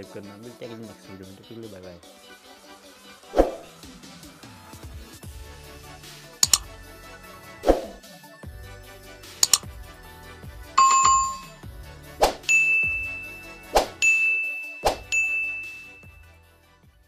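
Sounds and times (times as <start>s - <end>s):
background music: 0.0s - 17.0s
quick double click: 6.4s - 6.7s, 9.4s - 9.7s
bell ding: 10.8s - 11.6s, 12.5s - 16.2s
held high chime: 10.8s - 11.6s, 12.5s - 16.2s.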